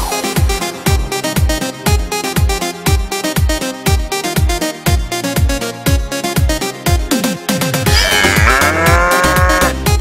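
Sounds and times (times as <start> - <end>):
cow mooing: 7.9 - 9.9.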